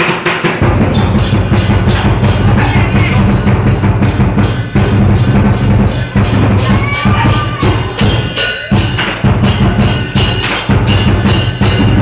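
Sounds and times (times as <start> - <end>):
cymbals clashing: 0.0 - 12.0
large drum beaten fast: 0.0 - 12.0.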